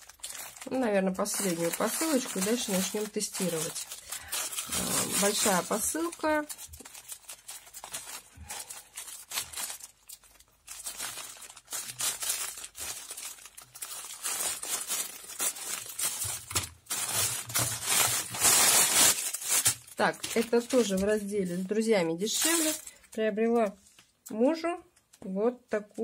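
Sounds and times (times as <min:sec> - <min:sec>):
plastic tearing: 0:00.0 - 0:21.3, 0:22.2 - 0:23.2
plastic bag crinkling: 0:00.0 - 0:24.1.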